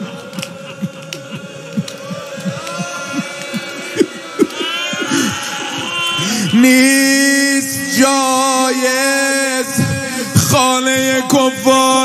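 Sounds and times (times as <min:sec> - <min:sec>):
people weeping and sobbing: 0:00.0 - 0:12.0.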